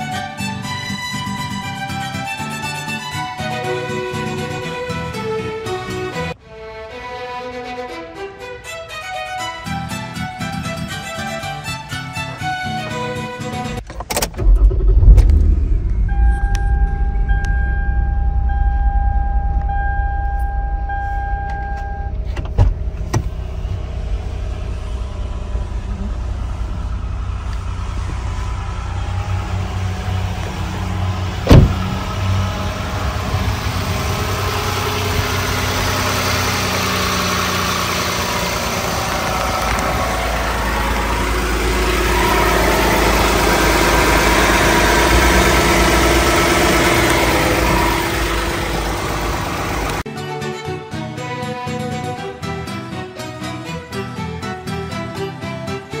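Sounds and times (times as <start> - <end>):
minivan engine idling: 0.0 - 6.3, 9.5 - 13.8, 14.4 - 50.1
steady chime: 15.8 - 22.1
sharp knock: 31.4 - 31.9.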